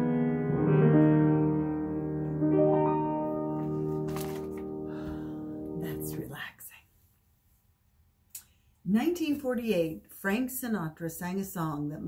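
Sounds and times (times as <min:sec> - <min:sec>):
grand piano chord ringing: 0:00.0 - 0:06.1.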